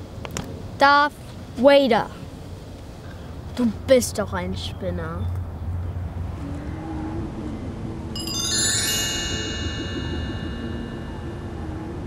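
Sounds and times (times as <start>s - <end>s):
steady low hum: 6.1s - 12.0s
low wavering tone: 6.5s - 12.0s
shimmering bell-like chime: 8.2s - 11.9s.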